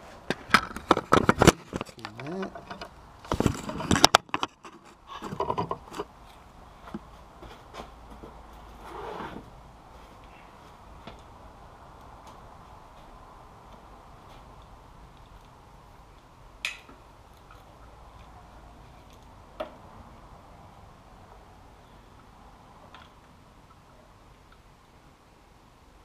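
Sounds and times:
faint background hum: 0.0 - 26.0.

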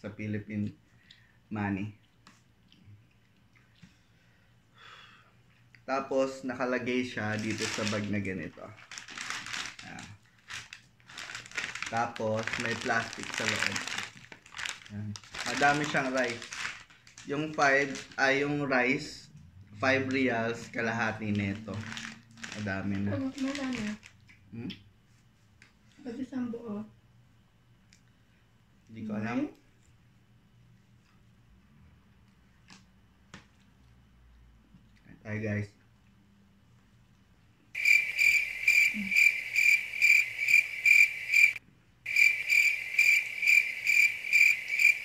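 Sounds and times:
soft eating clicks: 2.0 - 4.0
paper bag rustling and crinkling: 7.2 - 18.3, 20.7 - 24.1.

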